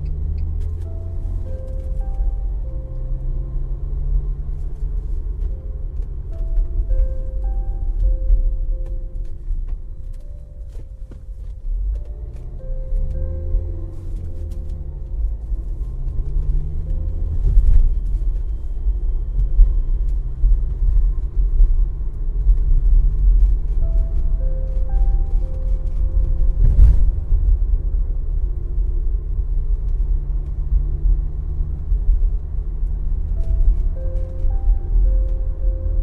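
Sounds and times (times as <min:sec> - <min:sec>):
soft ambient music: 0:00.0 - 0:36.0
train rumbling: 0:00.0 - 0:36.0.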